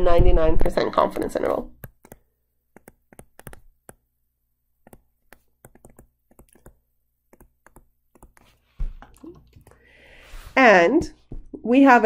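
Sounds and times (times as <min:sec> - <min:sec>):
stylus tapping on tablet screen: 0:01.1 - 0:04.1, 0:04.8 - 0:09.8, 0:11.0 - 0:11.6.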